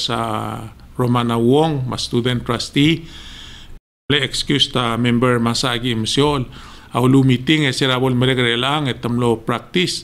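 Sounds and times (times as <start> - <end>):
man talking: 0.0 - 3.1, 4.1 - 10.0
man breathing in: 3.0 - 3.8, 6.5 - 6.9.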